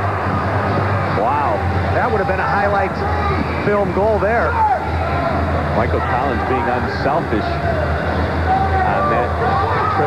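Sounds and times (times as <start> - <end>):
arena crowd noise: 0.0 - 10.0
man talking: 5.7 - 7.7.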